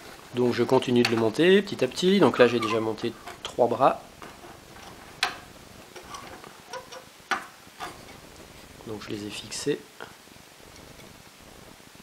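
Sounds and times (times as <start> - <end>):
frame parts clicking together: 4.2 - 8.1.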